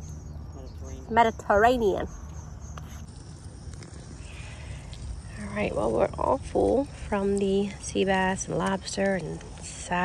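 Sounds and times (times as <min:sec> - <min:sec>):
crickets chirping: 0:00.0 - 0:10.0
low outdoor rumble: 0:00.0 - 0:10.0.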